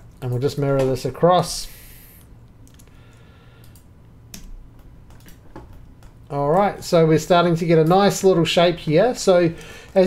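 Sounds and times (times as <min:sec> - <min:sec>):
computer keyboard and mouse clicks: 0:02.6 - 0:06.9.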